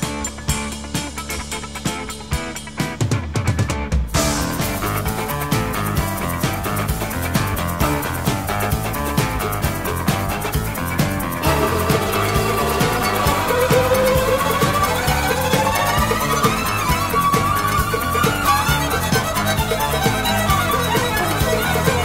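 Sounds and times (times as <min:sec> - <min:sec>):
country-rock band instrumental: 0:00.0 - 0:22.0
fiddle sliding notes: 0:11.4 - 0:22.0.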